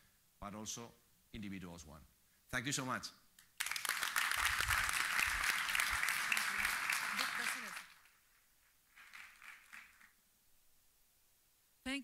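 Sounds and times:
faint audience applause: 0:03.6 - 0:10.2.

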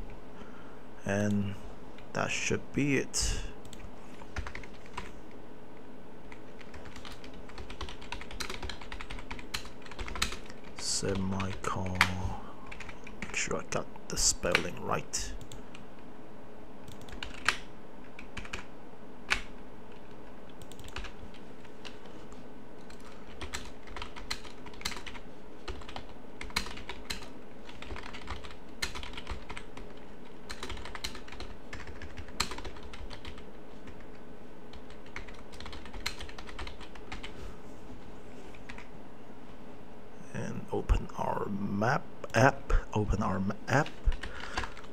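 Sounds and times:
typing on computer keyboard: 0:03.7 - 0:05.1, 0:06.3 - 0:13.4, 0:16.9 - 0:17.6, 0:18.2 - 0:18.7, 0:19.3 - 0:22.0, 0:22.9 - 0:37.3, 0:43.8 - 0:44.9.

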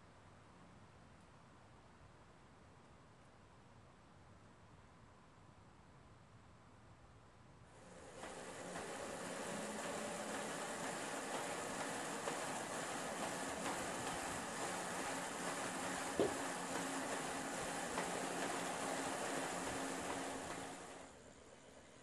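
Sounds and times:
faint steady hum: 0:00.0 - 0:22.0
bicycle drivetrain whirring: 0:07.8 - 0:21.4
spinning wheels whirring: 0:07.8 - 0:22.0.

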